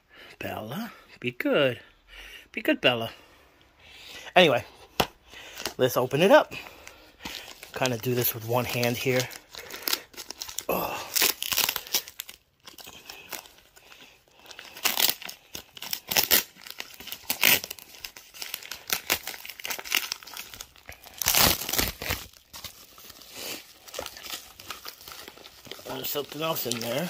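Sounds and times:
plastic mailer tearing and crinkling: 0:05.5 - 0:27.0.

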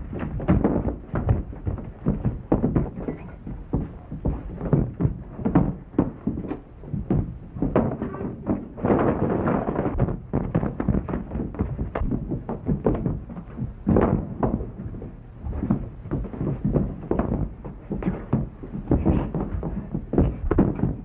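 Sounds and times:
punches and thuds: 0:00.0 - 0:21.0.

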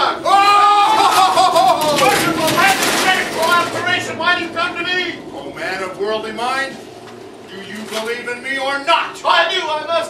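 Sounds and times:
person shouting: 0:00.0 - 0:02.0
loud wavering cry: 0:00.0 - 0:02.9
dense rattling hissing noise: 0:01.3 - 0:10.0.

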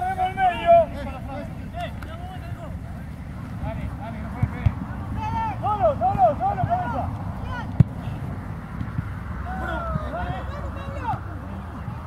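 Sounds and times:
players shouting: 0:00.0 - 0:12.0.

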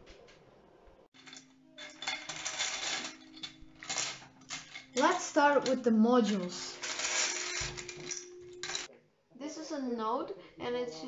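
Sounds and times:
plastic pieces clattering in metal bowl: 0:01.2 - 0:08.9.

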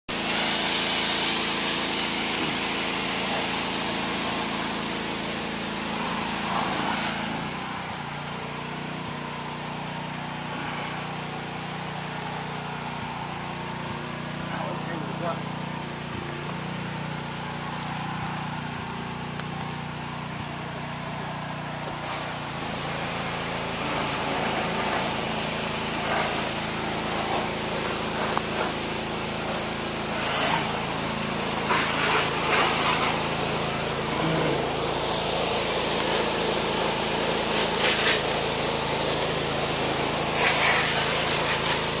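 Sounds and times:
pressure washer spray hiss: 0:00.1 - 0:42.0
small gasoline engine running: 0:00.1 - 0:42.0.

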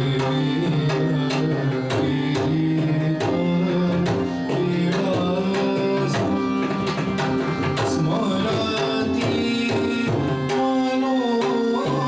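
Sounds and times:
sustained harmonium notes: 0:00.0 - 0:12.0.

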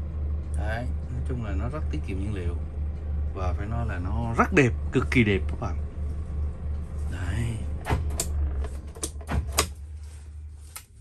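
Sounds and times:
diesel engine idling: 0:00.0 - 0:10.7
sharp clicks and knocks: 0:07.8 - 0:09.8.

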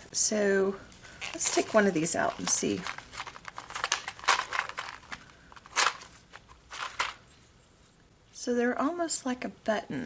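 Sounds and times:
plastic blister pack clicking: 0:01.3 - 0:07.2.

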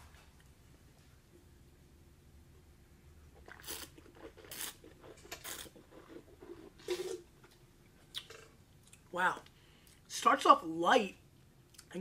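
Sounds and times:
slurping and swishing wine: 0:03.3 - 0:08.5.

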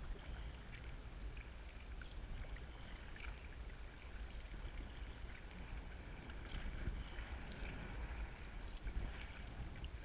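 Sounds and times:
water splashing and lapping: 0:00.0 - 0:10.0
wind rumbling on microphone: 0:00.0 - 0:10.0.

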